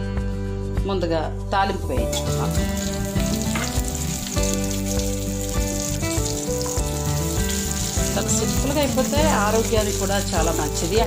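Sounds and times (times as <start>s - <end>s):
background music with held notes: 0.0s - 11.0s
chillies sizzling in hot oil: 2.0s - 11.0s.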